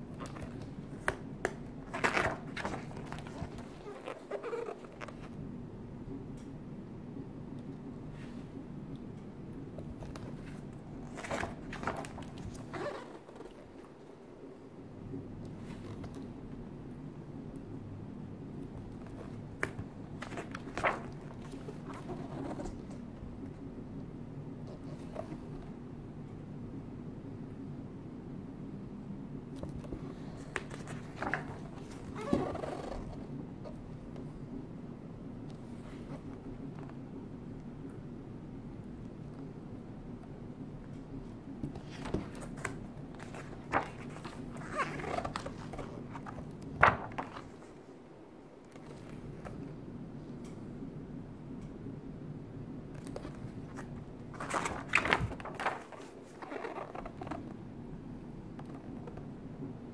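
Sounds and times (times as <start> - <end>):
low steady hum: 0.0 - 59.9
page snapping as it turns: 0.2 - 5.2, 10.0 - 13.6, 18.9 - 23.0, 29.6 - 32.4, 41.7 - 47.6, 53.0 - 57.3.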